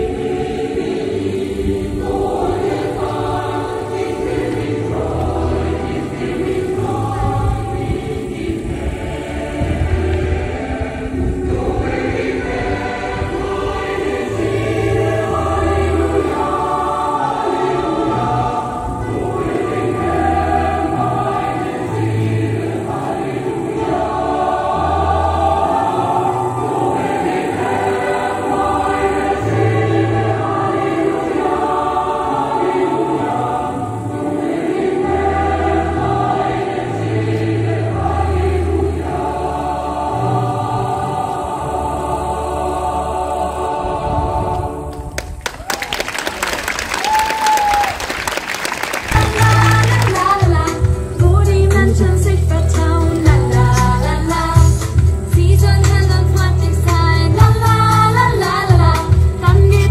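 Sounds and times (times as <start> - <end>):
choir singing: 0.0 - 45.6, 49.0 - 59.9.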